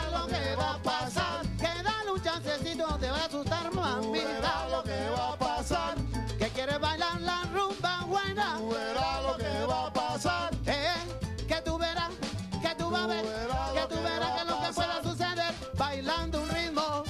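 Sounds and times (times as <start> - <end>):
salsa band playing: 0.0 - 17.0.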